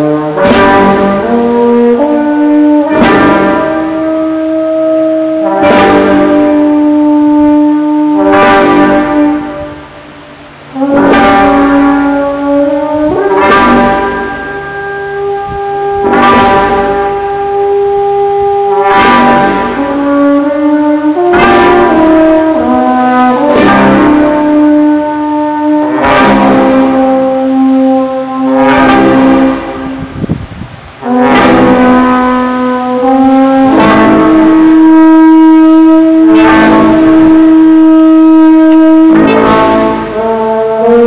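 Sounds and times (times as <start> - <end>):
brass band playing slow march: 0.0 - 41.0
cymbal crash: 0.3 - 2.1, 2.8 - 40.7.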